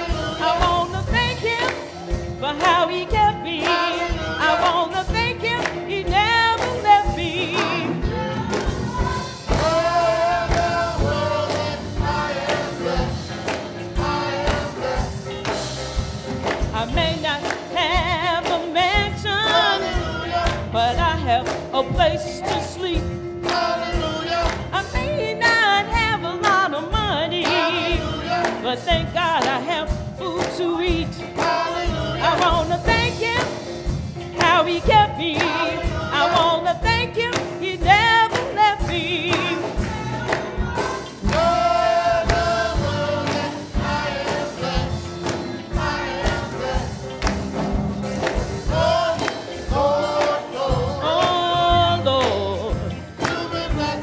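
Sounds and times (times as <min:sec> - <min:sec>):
lead voice singing with vibrato: 0:00.0 - 0:15.6, 0:16.7 - 0:47.3, 0:48.6 - 0:54.0
steady thumping beat: 0:00.0 - 0:53.0
praise team singing: 0:00.0 - 0:54.0.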